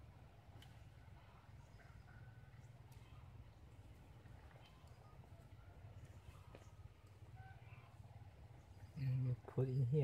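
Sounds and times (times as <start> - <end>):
faint bird chirps: 0.7 - 10.0.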